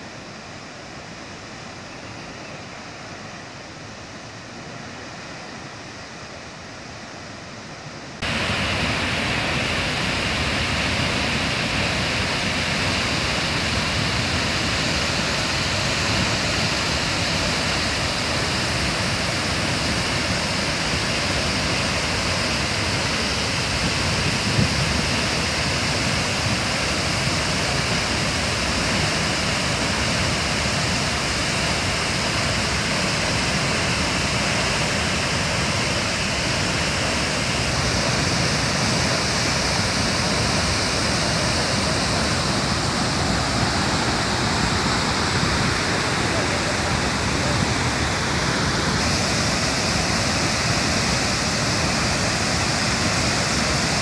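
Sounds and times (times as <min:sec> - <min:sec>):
waterfall rushing: 0:08.1 - 0:54.0.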